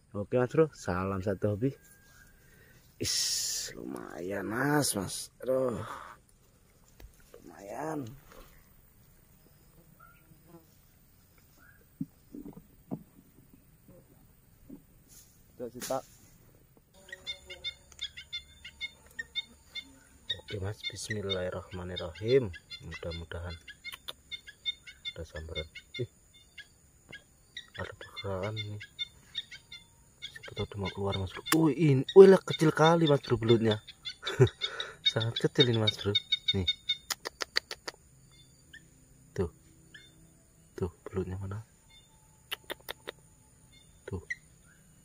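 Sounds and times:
bird chirping: 0:00.0 - 0:16.0, 0:16.6 - 0:45.0
sharp clicks: 0:37.0 - 0:38.0, 0:42.5 - 0:43.2.

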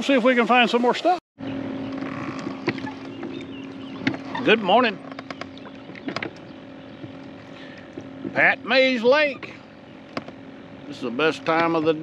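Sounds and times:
steady low hum: 0:01.4 - 0:12.0
oars knocking in oarlocks: 0:01.9 - 0:08.5, 0:09.3 - 0:10.5.

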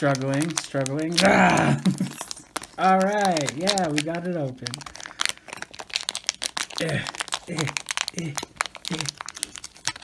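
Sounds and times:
plastic packaging crinkling: 0:00.0 - 0:10.0
grunts of effort: 0:01.2 - 0:02.0.

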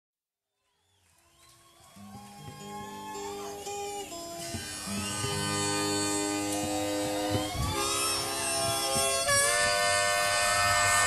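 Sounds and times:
long held pitched notes: 0:01.8 - 0:11.0
plucked acoustic guitar: 0:02.0 - 0:11.0.

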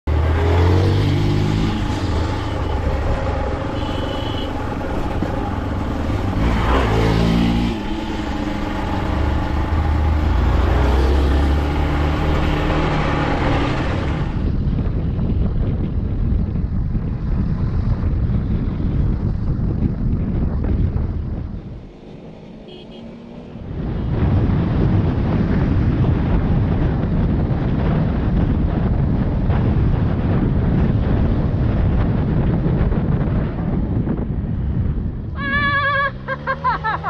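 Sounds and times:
motorcycle engine revving: 0:00.0 - 0:14.7, 0:17.4 - 0:27.0.

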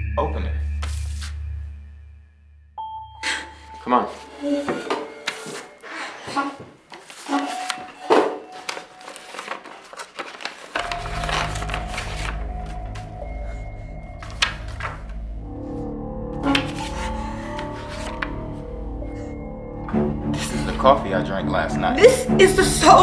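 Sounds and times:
paper rustling: 0:04.1 - 0:15.2, 0:16.4 - 0:18.4
low droning film score: 0:10.8 - 0:22.8.

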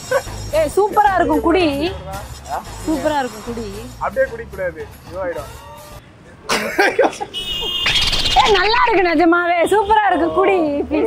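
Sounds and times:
man coughing and laughing: 0:06.4 - 0:07.8.

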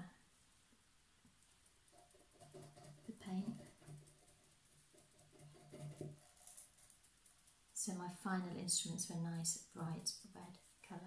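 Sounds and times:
paint sponge dabbing tin can: 0:01.4 - 0:07.8.

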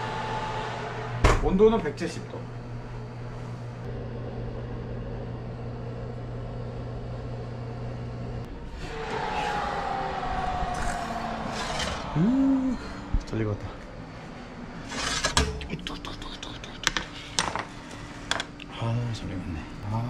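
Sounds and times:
oven humming: 0:00.0 - 0:16.1
faint falling squeal: 0:08.7 - 0:13.1.

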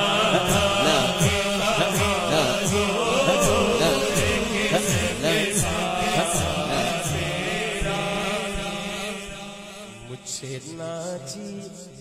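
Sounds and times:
person chanting unaccompanied: 0:00.0 - 0:12.0.

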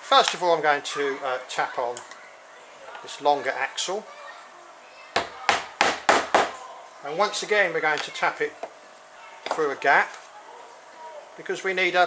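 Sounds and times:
hammer tapping wooden dowel: 0:05.2 - 0:06.5.

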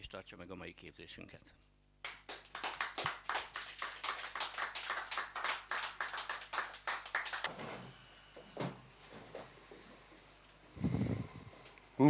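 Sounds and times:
audience clapping: 0:02.0 - 0:07.5.

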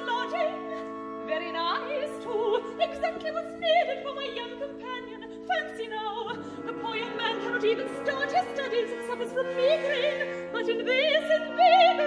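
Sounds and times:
operatic singing with vibrato: 0:00.0 - 0:12.0.

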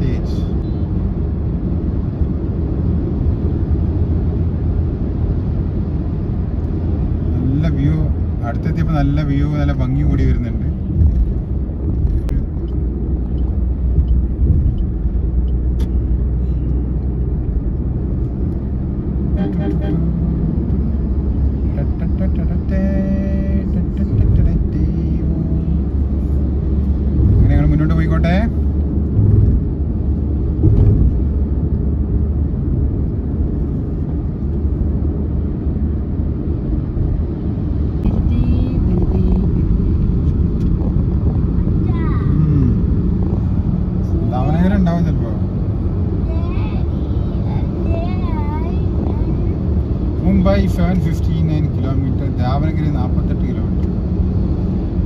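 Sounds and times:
car interior road rumble: 0:00.0 - 0:55.0.

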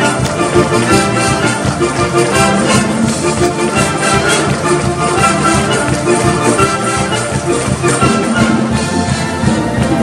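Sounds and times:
brass instruments playing tune: 0:00.0 - 0:10.0
wind band playing: 0:00.0 - 0:10.0.

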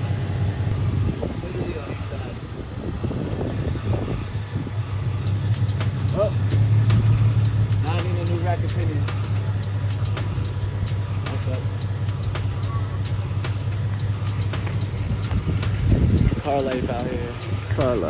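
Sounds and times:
car engine idling: 0:00.0 - 0:18.0
voices: 0:00.0 - 0:18.0.

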